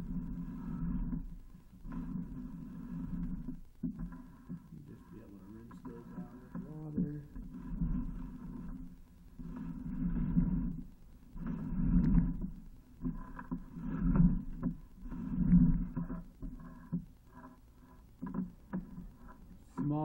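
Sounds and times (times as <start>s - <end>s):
cable rubbing in a pipe: 0.0s - 20.0s.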